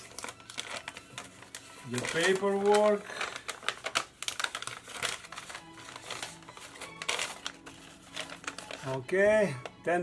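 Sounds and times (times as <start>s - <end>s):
paper crinkling and rustling: 0.0s - 9.8s
soft music: 0.0s - 10.0s.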